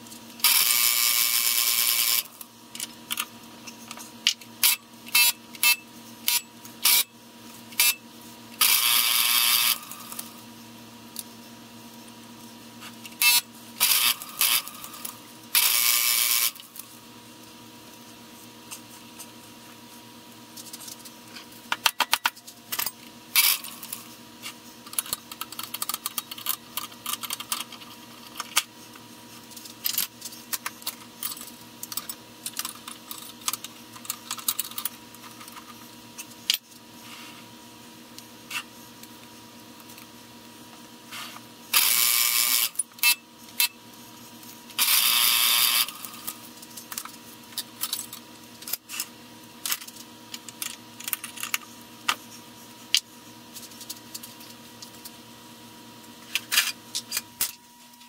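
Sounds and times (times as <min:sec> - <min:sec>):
drill cutting noise: 0:00.4 - 0:02.4, 0:04.6 - 0:07.1, 0:08.6 - 0:10.3, 0:13.2 - 0:16.8, 0:41.7 - 0:43.2, 0:44.8 - 0:46.3.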